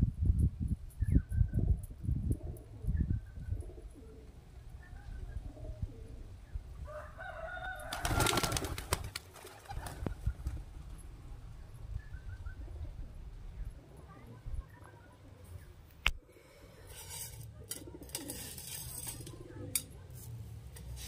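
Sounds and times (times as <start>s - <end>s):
pigeon wingbeats clattering: 7.8s - 10.6s.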